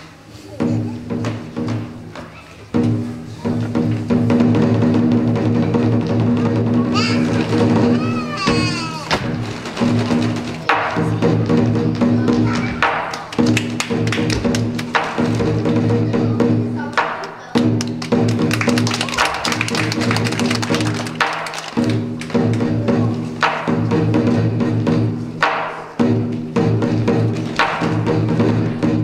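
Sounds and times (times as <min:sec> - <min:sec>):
large drum beating: 0:00.6 - 0:29.0.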